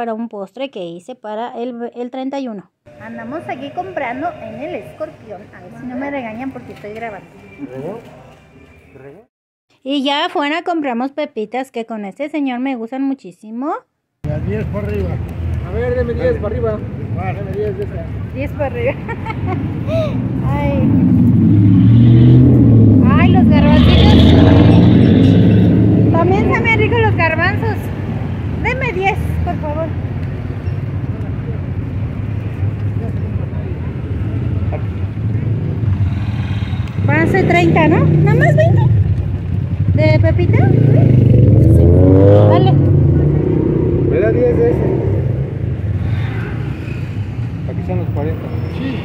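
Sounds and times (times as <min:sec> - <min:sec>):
vehicle engine rumbling: 0:14.3 - 0:49.0.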